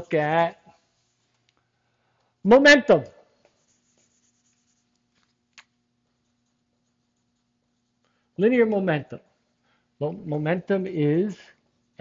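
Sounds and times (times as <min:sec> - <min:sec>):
thin steady hum: 0:00.0 - 0:12.0
whiteboard eraser rubbing: 0:03.5 - 0:05.3.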